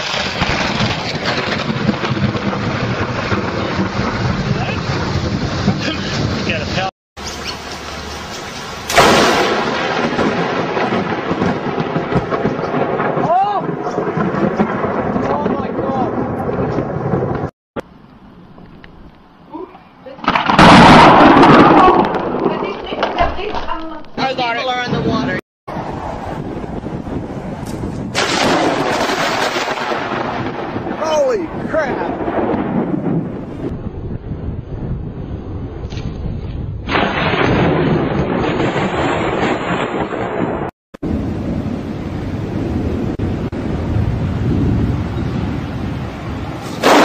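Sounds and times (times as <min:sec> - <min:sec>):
steady storm rumble: 0:00.0 - 0:06.9, 0:08.7 - 0:17.5, 0:20.2 - 0:47.0.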